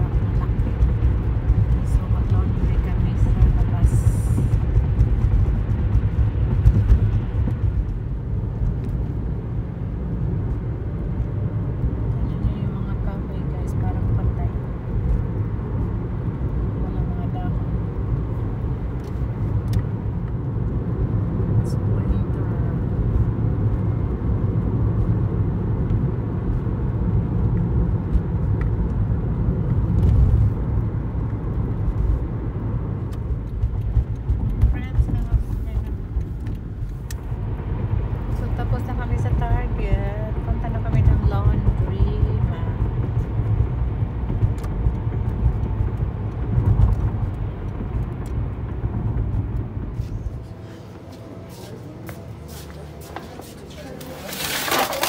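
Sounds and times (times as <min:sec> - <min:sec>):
car engine rumble: 0:00.0 - 0:55.0
tyre road noise: 0:00.0 - 0:55.0.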